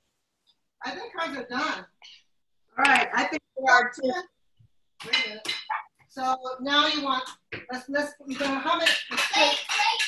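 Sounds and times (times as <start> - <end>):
people talking: 0.8 - 2.0, 2.8 - 4.3, 5.0 - 10.0.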